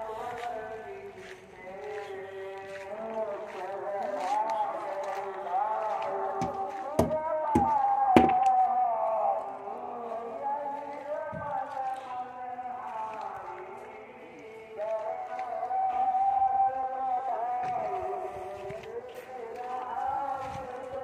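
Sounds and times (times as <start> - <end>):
person singing long notes: 0.0 - 21.0
sharp knocks: 6.4 - 8.6.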